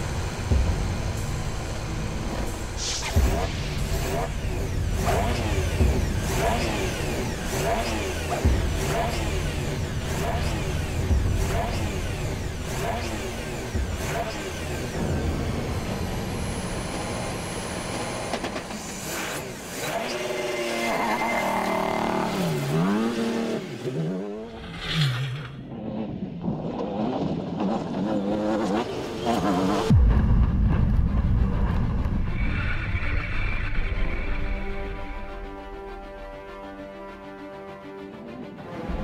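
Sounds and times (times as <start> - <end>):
car driving on dirt: 0.0 - 34.9
rally car engine revving: 0.0 - 35.6.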